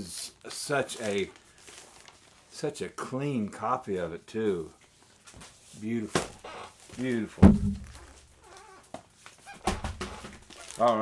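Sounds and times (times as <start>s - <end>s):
vinyl records being handled: 0.5s - 2.6s, 4.8s - 11.0s
sharp thud: 7.4s - 8.1s.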